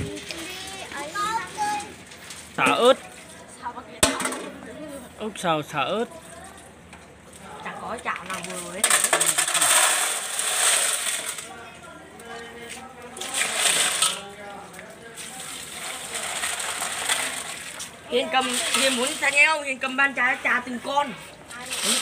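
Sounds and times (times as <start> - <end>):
snail shells clattering in metal basin: 8.0 - 11.6, 13.1 - 14.4, 15.2 - 20.2, 21.5 - 22.0.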